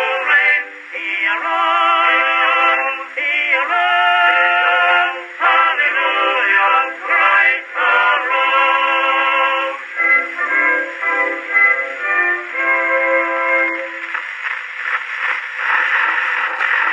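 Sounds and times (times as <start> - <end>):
male vocal quartet singing a hymn: 0.0 - 10.0
record surface noise: 0.0 - 16.9.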